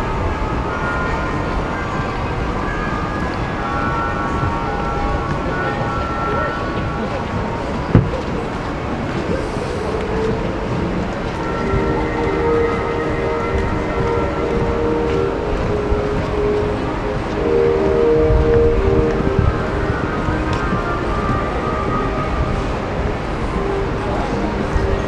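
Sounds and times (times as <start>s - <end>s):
hubbub of voices: 0.0s - 25.0s
sustained shifting tones: 3.7s - 25.0s.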